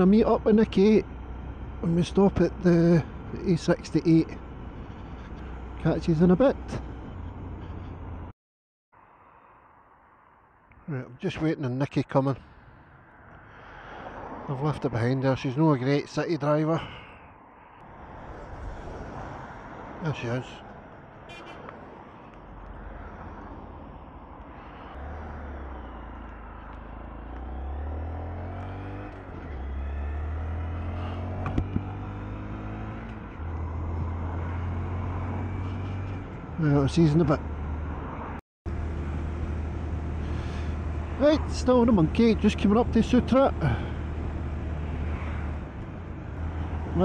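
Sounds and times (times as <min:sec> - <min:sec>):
traffic engine noise: 0:00.0 - 0:08.3, 0:10.0 - 0:47.0
road noise: 0:00.0 - 0:47.0.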